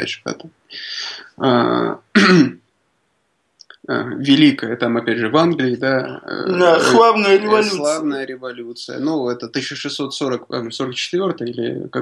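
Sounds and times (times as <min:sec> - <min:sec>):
man speaking: 0:00.0 - 0:02.5, 0:03.6 - 0:12.0.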